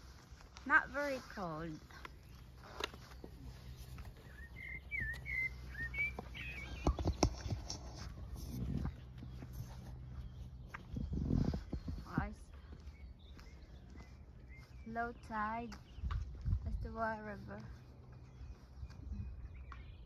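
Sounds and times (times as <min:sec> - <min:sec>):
bird chirping: 0:01.0 - 0:20.0.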